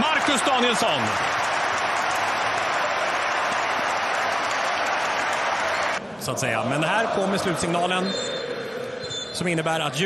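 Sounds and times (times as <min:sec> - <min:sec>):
stadium crowd cheering and applauding: 0:00.0 - 0:08.8.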